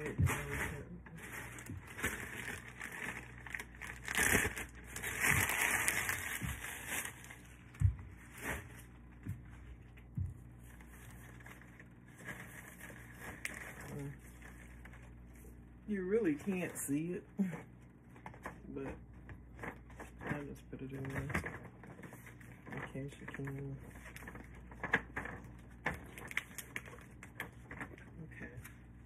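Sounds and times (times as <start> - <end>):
paper shred crinkling and rustling: 0.0 - 9.9, 10.5 - 17.1, 19.4 - 29.0.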